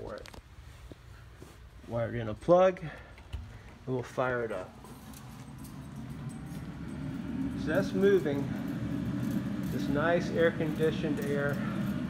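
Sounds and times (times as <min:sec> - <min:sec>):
fan humming: 0:00.0 - 0:12.0.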